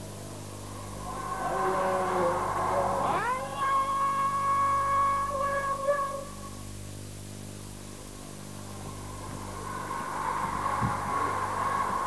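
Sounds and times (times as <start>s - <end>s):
low steady hum: 0.0s - 12.0s
person chanting: 1.0s - 6.5s.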